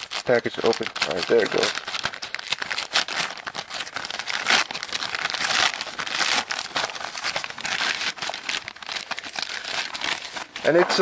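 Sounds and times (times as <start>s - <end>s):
plastic mailer bag crinkling: 0.0s - 11.0s.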